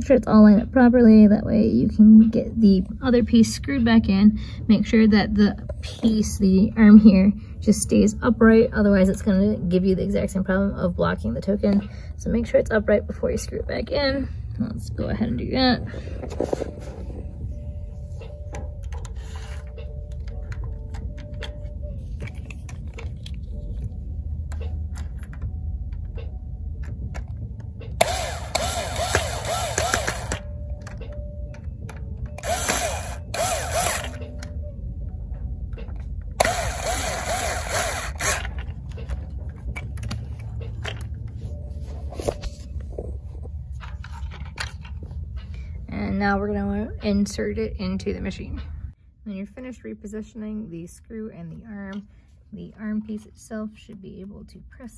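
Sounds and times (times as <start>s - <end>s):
plastic parts clicking and handling: 18.6s - 23.9s, 35.8s - 41.4s, 43.8s - 45.0s
power screwdriver running: 28.0s - 30.4s, 32.4s - 34.2s, 36.4s - 38.6s.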